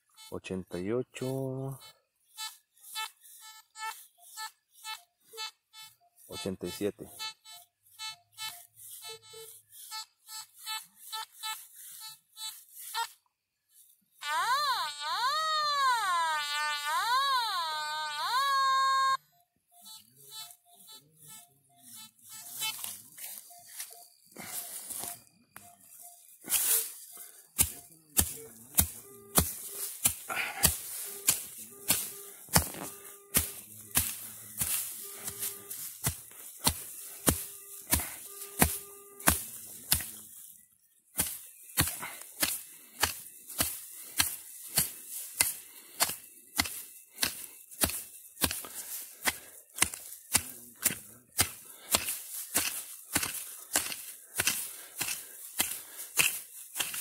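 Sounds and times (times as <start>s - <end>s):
metal detector beeps: 0.0s - 13.2s, 13.8s - 57.0s
metal detector warbling tone: 3.4s - 13.2s, 14.2s - 36.1s, 36.7s - 39.5s
hand tool striking ground: 21.9s - 57.0s.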